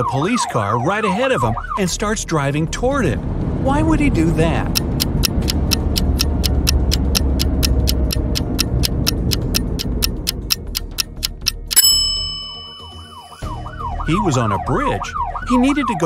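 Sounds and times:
cartoon police siren: 0:00.0 - 0:02.0, 0:12.8 - 0:16.0
background music: 0:00.0 - 0:16.0
timer ticking: 0:04.4 - 0:13.3
bell ding: 0:11.7 - 0:13.4.

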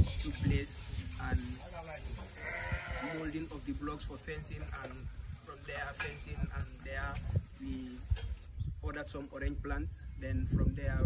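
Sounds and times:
sheep bleating: 0:02.3 - 0:03.4.

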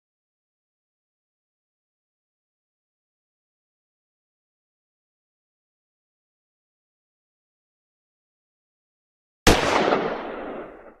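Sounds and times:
gunshot with echoing tail: 0:09.5 - 0:11.0.

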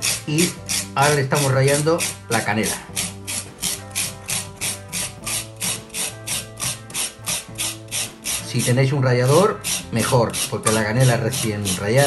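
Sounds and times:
cinnamon stick grated on rasp: 0:00.0 - 0:12.0.

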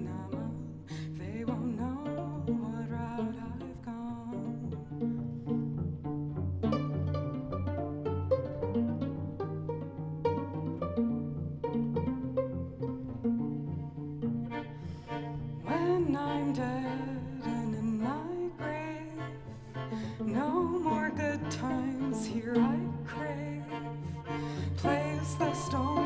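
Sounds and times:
bowed strings with vibrato: 0:00.0 - 0:26.0
plucked pizzicato strings: 0:00.0 - 0:26.0.

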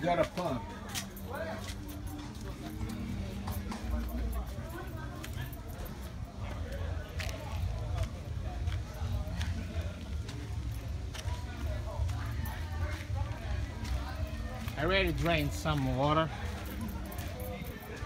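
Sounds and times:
footsteps on concrete and dirt: 0:00.0 - 0:18.0.

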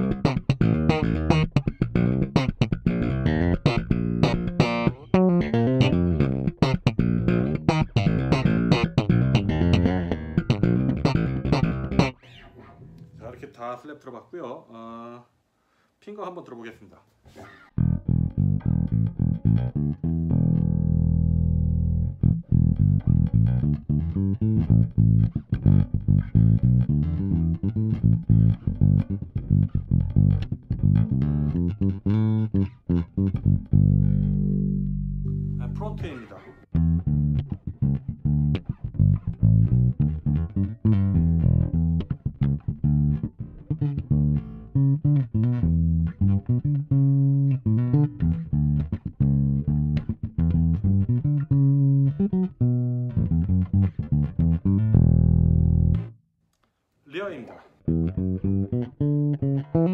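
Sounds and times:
fingerstyle bass guitar playing: 0:00.0 - 0:13.2, 0:17.4 - 0:56.2, 0:57.8 - 0:59.9.

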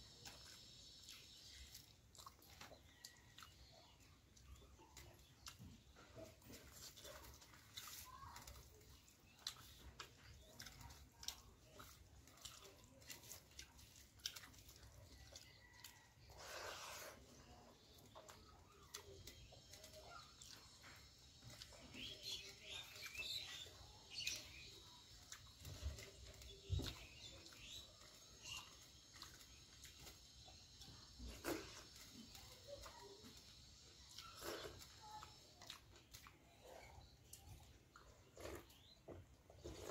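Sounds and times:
chewing and wet mouth sounds: 0:00.0 - 0:39.9
faint bird chirps: 0:15.1 - 0:39.9.

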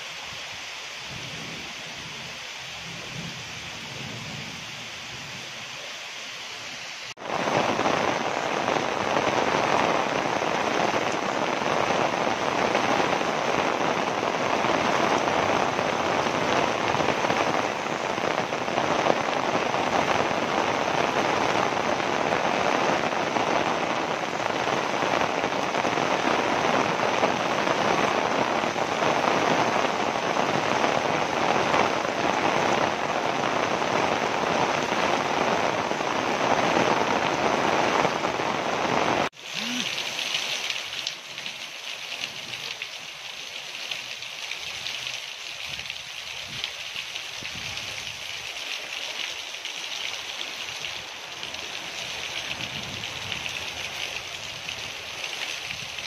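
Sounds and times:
heavy rain on ground and roofs: 0:00.0 - 0:56.0.

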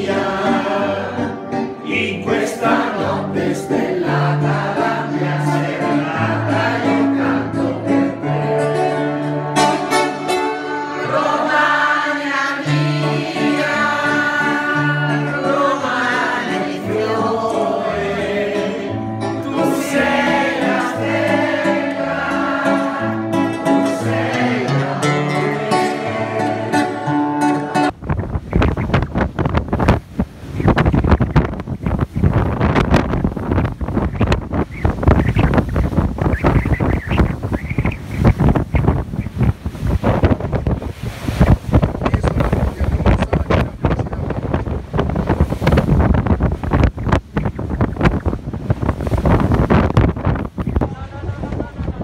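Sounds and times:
music track: 0:00.0 - 0:28.0
sea waves: 0:00.0 - 0:52.0
wind buffeting microphone: 0:27.9 - 0:52.0.

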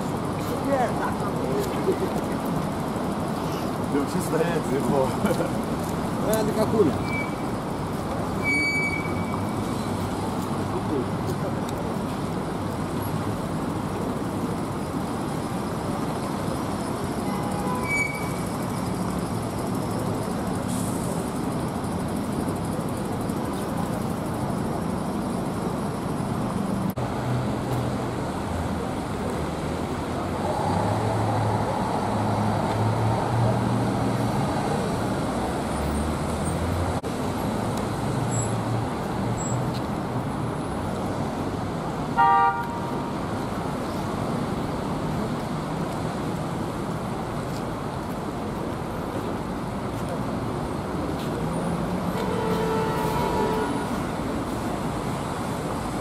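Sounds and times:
vehicle engines running: 0:00.0 - 0:42.1
bus passing: 0:00.0 - 0:56.0
tyres on wet road: 0:00.0 - 0:56.0.

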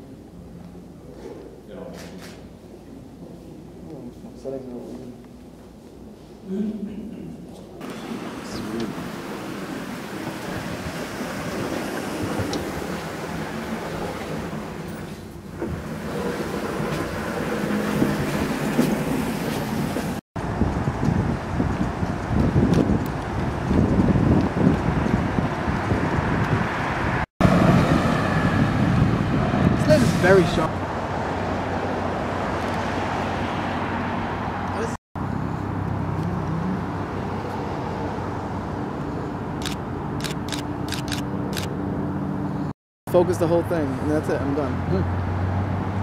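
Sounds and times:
city street traffic: 0:00.0 - 0:46.0.

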